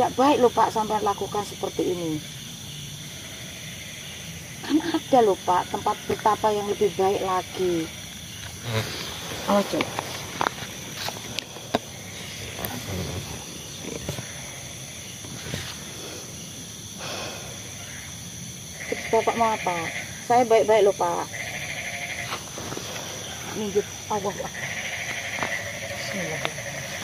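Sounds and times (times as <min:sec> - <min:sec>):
night insects droning: 0:00.0 - 0:27.0
man growling: 0:12.7 - 0:13.5.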